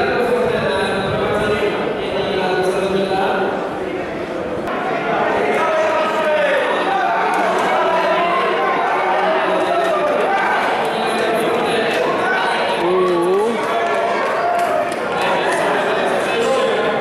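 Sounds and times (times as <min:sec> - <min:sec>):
crowd voices: 0:00.0 - 0:17.0
race commentator over loudspeakers: 0:05.5 - 0:13.7.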